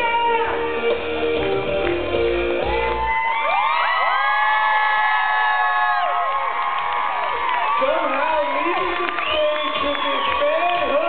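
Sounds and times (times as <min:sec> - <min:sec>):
audience cheering and whooping: 0:02.4 - 0:11.0.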